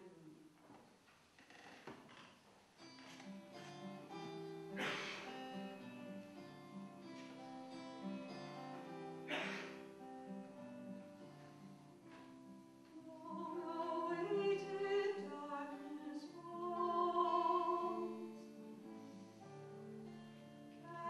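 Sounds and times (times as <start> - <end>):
solo acoustic guitar: 2.8 - 21.0.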